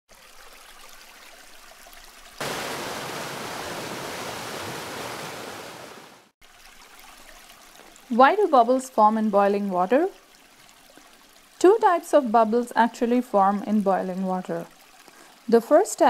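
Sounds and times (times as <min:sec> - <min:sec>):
faint water sound: 0:00.1 - 0:16.0
geyser spraying water rush: 0:02.4 - 0:06.3.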